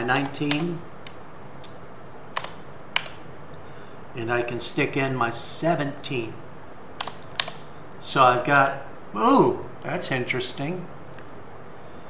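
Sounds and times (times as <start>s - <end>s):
computer keyboard keystrokes: 0.2s - 1.8s, 2.4s - 3.2s, 7.0s - 7.7s.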